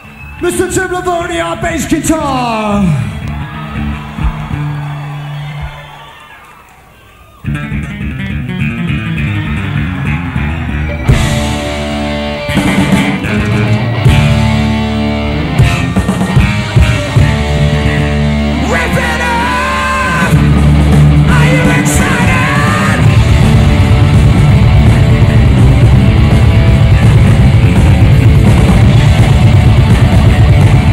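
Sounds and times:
fast guitar riff: 0:07.4 - 0:30.9
heavy metal band playing live: 0:07.5 - 0:30.9
drums and cymbals: 0:10.9 - 0:30.9.

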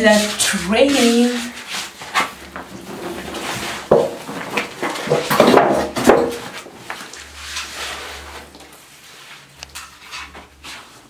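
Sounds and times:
hands brushing wallpaper: 0:00.0 - 0:05.2, 0:06.8 - 0:11.0.

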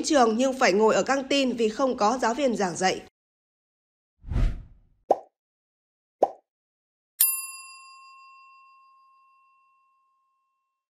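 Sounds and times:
bright bell ding: 0:07.2 - 0:10.6.

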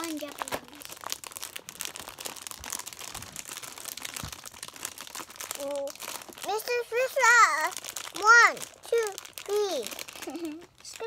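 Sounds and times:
plastic packet crinkling: 0:00.0 - 0:11.0.

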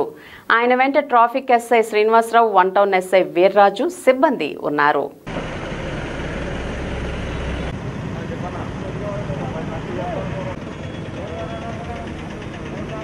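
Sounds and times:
vehicle engines idling: 0:05.3 - 0:13.0.

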